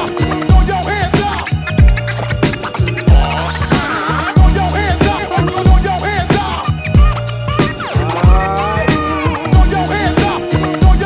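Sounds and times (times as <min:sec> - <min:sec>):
sustained bass line: 0:00.0 - 0:11.0
turntable scratching: 0:00.0 - 0:11.0.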